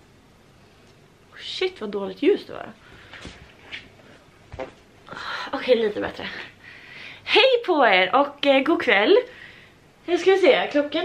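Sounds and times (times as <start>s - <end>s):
soft knocks and rustles: 3.0s - 4.8s.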